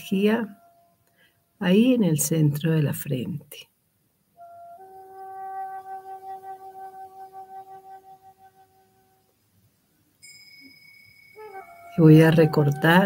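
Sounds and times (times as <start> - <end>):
soft meditation music: 0.0 - 2.7, 4.2 - 13.0.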